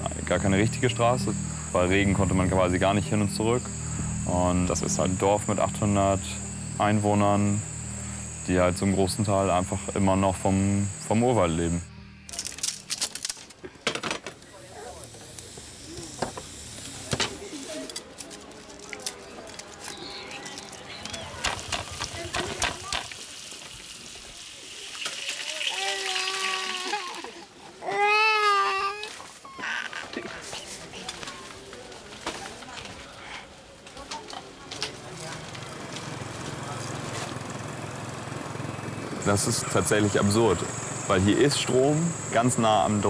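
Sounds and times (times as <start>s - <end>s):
generator engine running: 0.0s - 13.4s, 19.4s - 23.0s, 34.7s - 43.0s.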